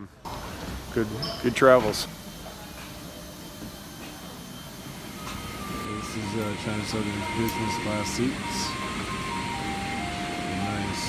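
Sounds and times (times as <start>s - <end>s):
airliner air systems hum and hiss: 0.0s - 11.0s.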